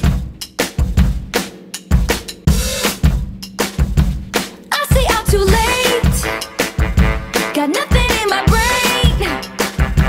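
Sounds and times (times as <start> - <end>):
drum kit beat: 0.0 - 10.0.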